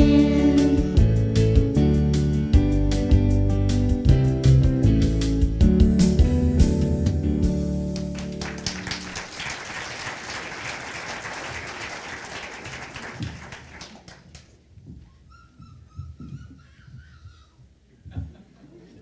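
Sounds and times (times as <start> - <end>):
audience applauding: 8.0 - 14.6.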